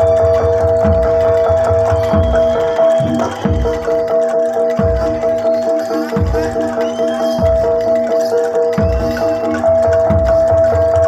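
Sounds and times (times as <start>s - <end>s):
drum beating fast rhythm: 0.0s - 11.0s.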